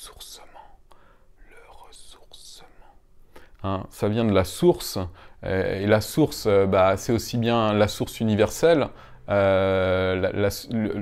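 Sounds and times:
man whispering: 0.0s - 6.5s.

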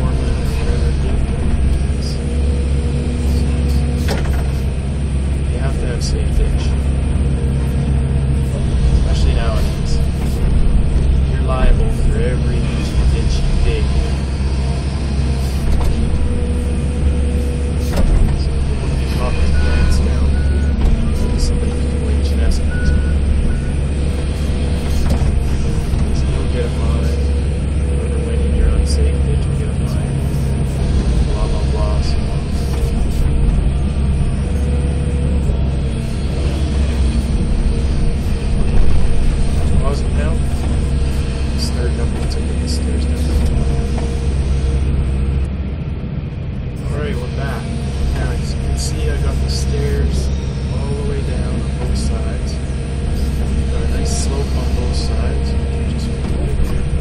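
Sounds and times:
excavator diesel engine running: 0.0s - 57.0s.

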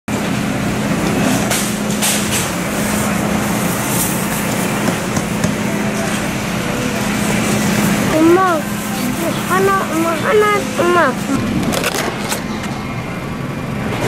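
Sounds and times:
grocery store hum: 0.1s - 14.0s.

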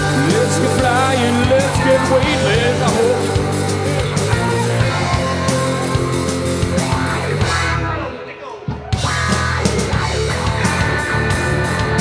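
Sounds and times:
live rock band playing: 0.0s - 8.2s, 8.8s - 12.0s.

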